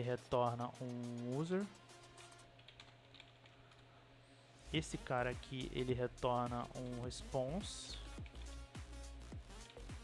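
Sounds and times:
faint keyboard typing: 2.1 - 4.0, 7.9 - 8.7, 9.5 - 10.0.

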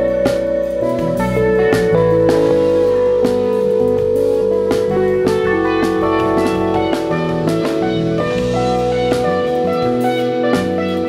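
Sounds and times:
bass: 0.0 - 11.0
drum kit: 0.0 - 11.0
electric guitar: 0.0 - 11.0
keyboards: 0.0 - 11.0.

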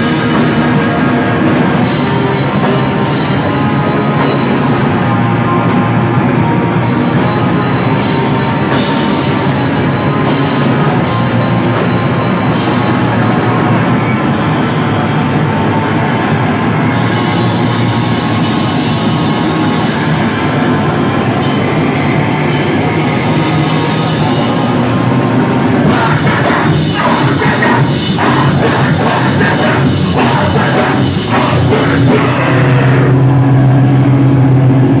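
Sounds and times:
live hardcore band playing: 0.0 - 35.0.

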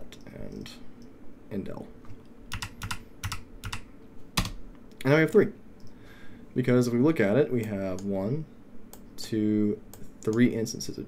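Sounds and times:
computer keyboard typing: 2.5 - 4.6.

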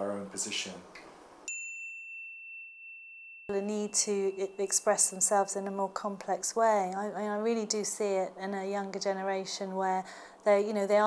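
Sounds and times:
electronic ding chime: 1.5 - 6.0.

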